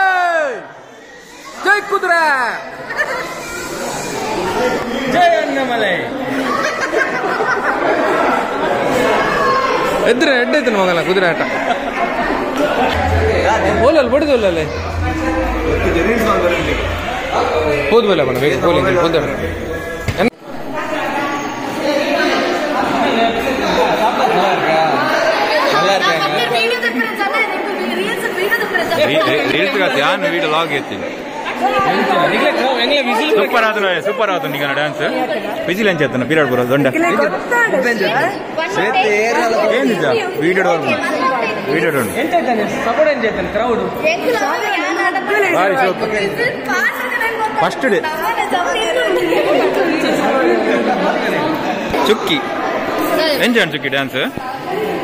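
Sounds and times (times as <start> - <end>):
group chattering in hall: 0.0 - 55.0.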